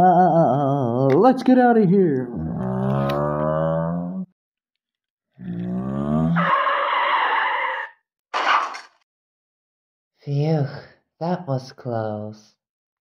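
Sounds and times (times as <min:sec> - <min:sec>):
person making car noises: 0:02.2 - 0:04.3, 0:05.4 - 0:06.5
mouth-made skid screech: 0:06.4 - 0:08.8.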